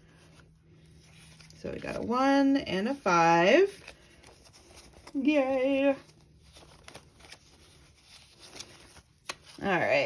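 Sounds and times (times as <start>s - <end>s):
paper banknotes rustling: 0.0s - 2.2s, 3.4s - 10.0s.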